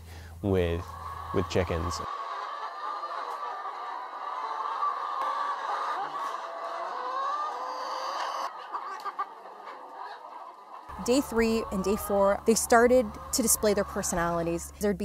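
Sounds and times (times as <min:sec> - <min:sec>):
hens clucking: 0:00.5 - 0:15.0.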